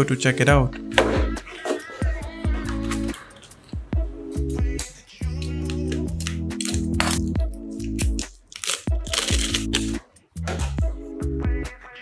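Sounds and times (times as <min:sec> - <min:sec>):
music with a steady beat: 0:00.7 - 0:12.0
bubble wrap crinkling: 0:05.4 - 0:10.0.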